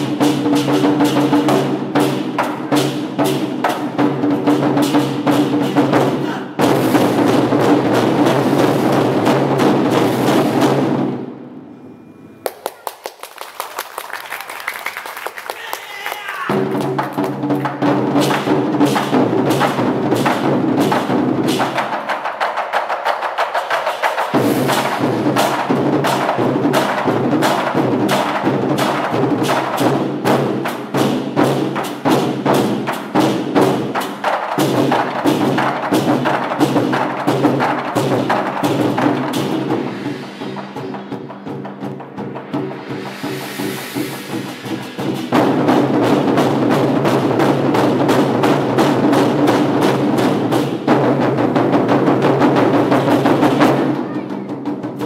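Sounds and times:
large barrel drums rolling: 16.5s - 55.0s.

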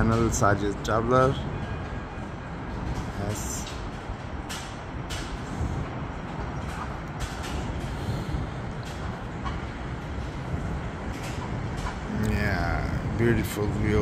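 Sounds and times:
low rumble of city traffic: 0.0s - 14.0s.

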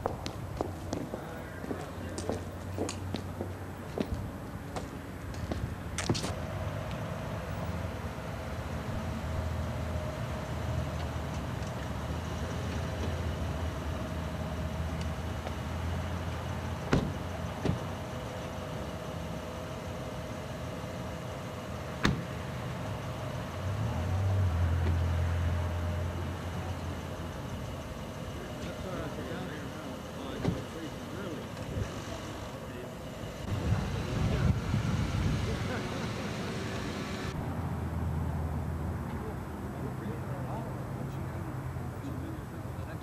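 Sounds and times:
faint voices: 0.9s - 4.0s, 25.9s - 37.4s
car door clunks: 16.9s - 17.9s, 22.0s - 22.3s.

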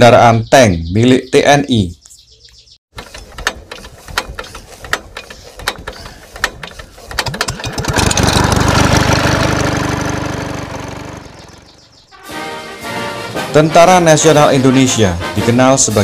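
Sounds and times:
small car engine starting: 3.0s - 11.9s.

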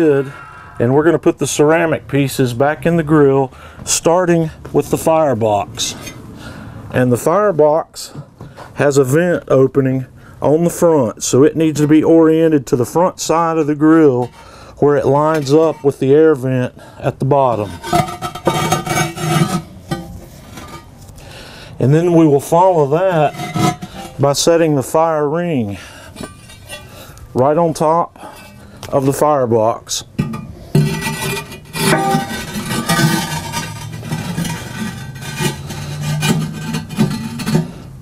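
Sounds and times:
ceramic scraping against ceramic: 17.5s - 21.1s, 22.7s - 24.2s, 26.2s - 27.1s, 30.2s - 38.0s.

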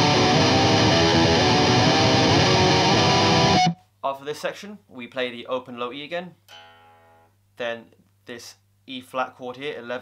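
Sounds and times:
distorted electric guitar tremolo picking: 0.0s - 3.8s.

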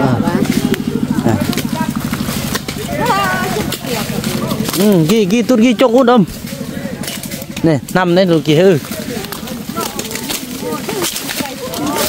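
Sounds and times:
fast low pulsing: 0.0s - 12.0s
people talking: 0.0s - 12.0s.

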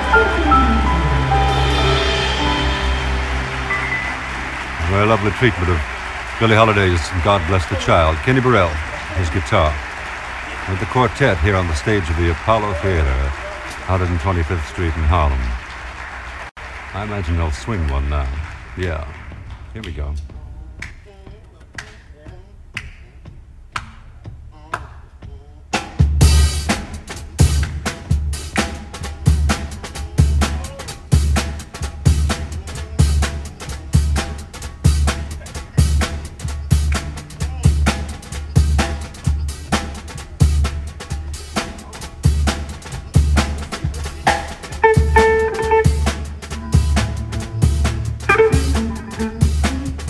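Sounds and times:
jazz band playing swing: 0.0s - 16.9s, 25.8s - 50.0s.

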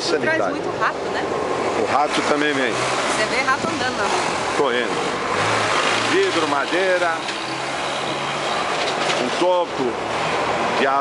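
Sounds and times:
vehicle engine humming: 0.0s - 11.0s.

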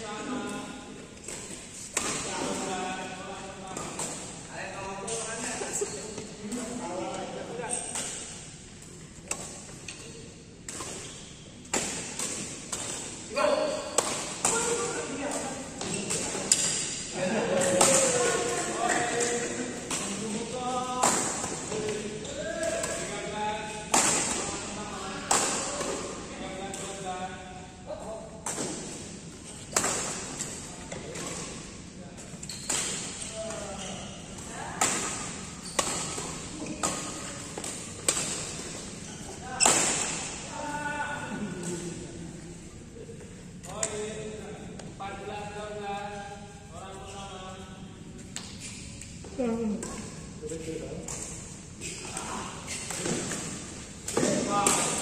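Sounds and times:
rackets hitting shuttlecock: 34.8s - 38.9s.

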